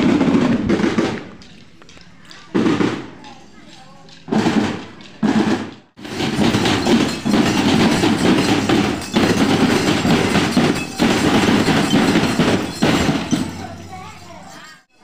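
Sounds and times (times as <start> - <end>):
marching drum band: 0.0 - 1.8, 2.4 - 3.4, 4.3 - 13.9.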